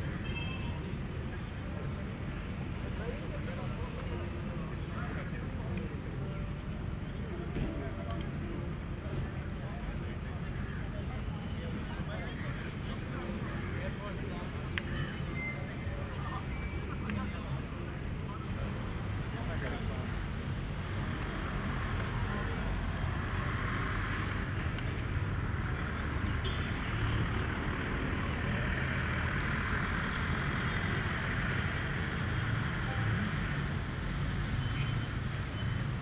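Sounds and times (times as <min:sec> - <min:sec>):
faint voices of passers-by: 0:00.0 - 0:36.0
low rumble of traffic: 0:00.0 - 0:36.0
wind: 0:00.0 - 0:36.0.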